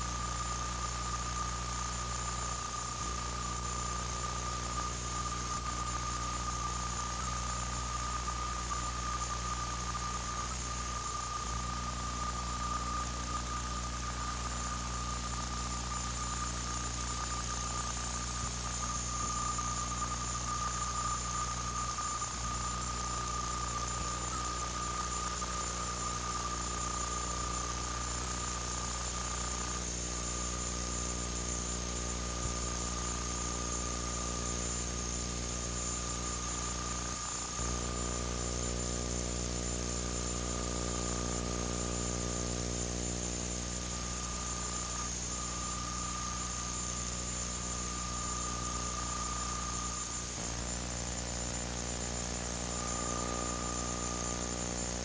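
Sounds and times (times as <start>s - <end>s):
high-pitched whine: 0.0s - 55.0s.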